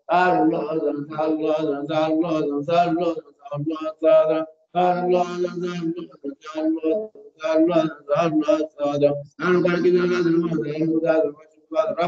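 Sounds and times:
man chanting a melodic recitation: 0.0 - 12.0.

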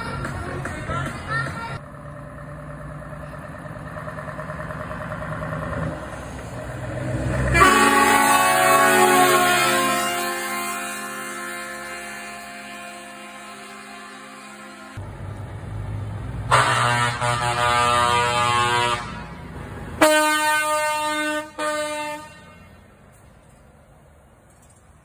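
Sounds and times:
truck engine: 0.0 - 25.0
truck air horn blasts: 7.4 - 15.0, 16.5 - 22.9.

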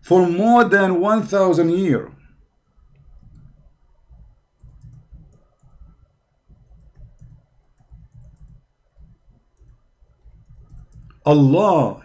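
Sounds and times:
soft low bumps: 2.8 - 11.1
mouse and keyboard clicking: 2.9 - 11.3.

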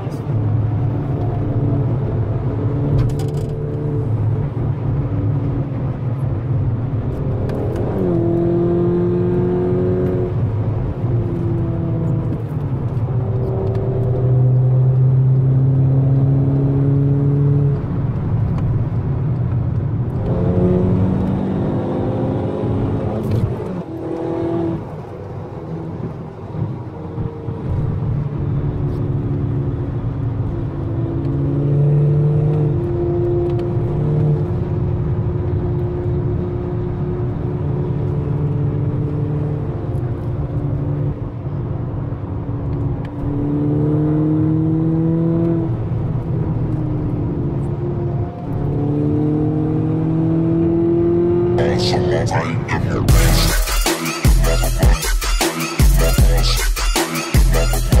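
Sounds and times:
car engine inside cabin: 0.0 - 55.2
road noise: 0.0 - 58.0.

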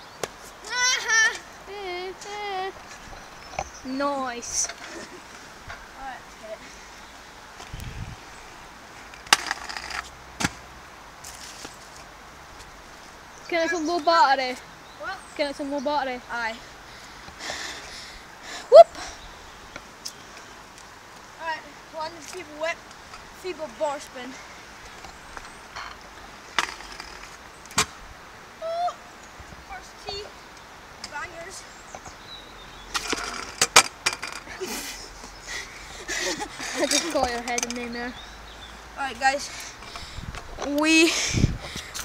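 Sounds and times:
scooter hitting ground: 9.2 - 10.6, 32.9 - 34.5.

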